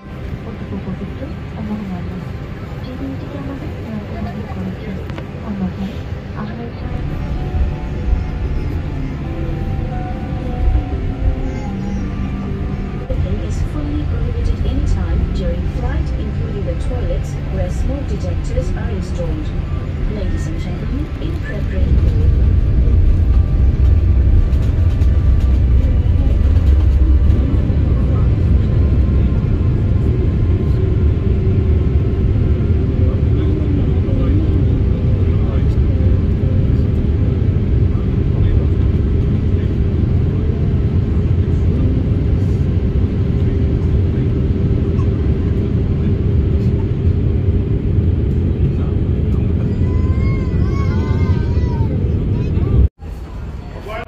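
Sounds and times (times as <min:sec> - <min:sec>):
jet engines deep rumble: 0:00.0 - 0:54.0.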